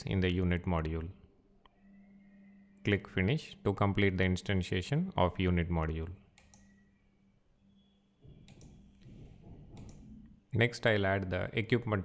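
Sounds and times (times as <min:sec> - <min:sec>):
computer mouse click: 0:06.4 - 0:06.8, 0:08.4 - 0:10.3.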